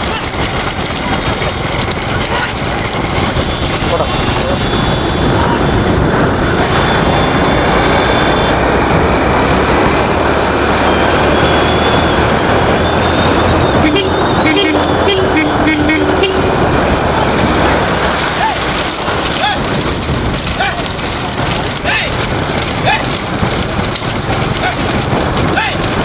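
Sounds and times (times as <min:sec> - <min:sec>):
motorbike engines running: 0:00.0 - 0:26.0
road and wind noise: 0:00.0 - 0:26.0
vehicle horn beeping rapidly: 0:03.3 - 0:06.0, 0:13.2 - 0:16.7.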